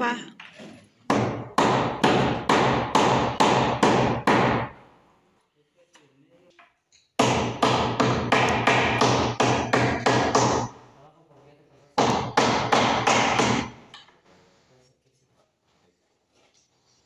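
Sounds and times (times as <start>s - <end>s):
hammer striking wooden frame: 1.1s - 4.8s, 7.2s - 10.8s, 12.0s - 14.0s.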